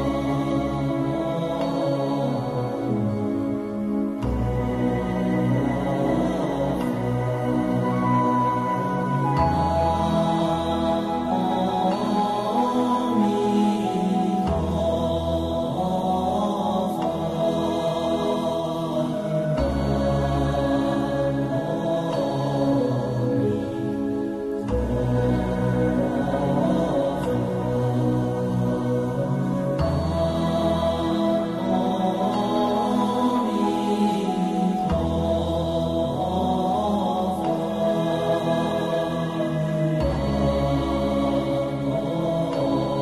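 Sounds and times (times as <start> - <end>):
calm instrumental music: 0.0 - 43.0
devotional chanting: 0.0 - 43.0
low drone: 0.0 - 43.0.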